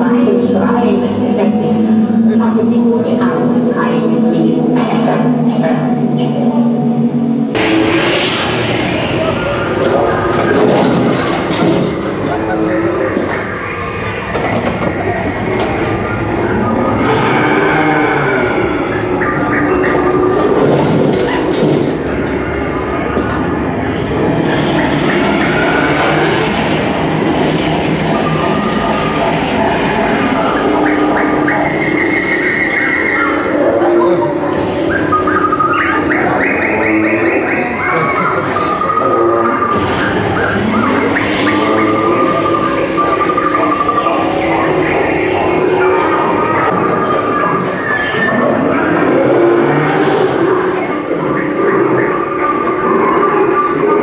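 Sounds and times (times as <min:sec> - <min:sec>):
steady rumbling: 0:00.0 - 0:54.0
held pitched animal calls: 0:28.3 - 0:50.9.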